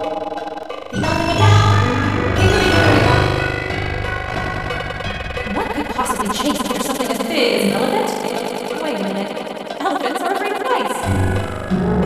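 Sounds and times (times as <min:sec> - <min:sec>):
distorted background music: 0:00.0 - 0:12.0
distorted cartoon voice: 0:01.0 - 0:03.6.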